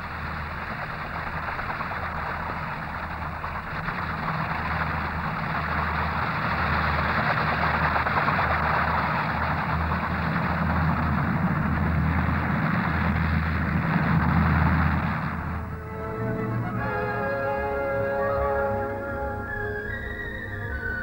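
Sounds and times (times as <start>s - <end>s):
aircraft engine and rotor: 0.0s - 21.0s
pulsing low hum: 0.0s - 21.0s.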